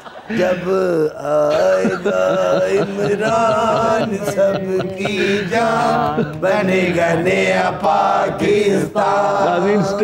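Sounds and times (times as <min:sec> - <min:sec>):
men singing chant-like melody: 0:00.2 - 0:10.0.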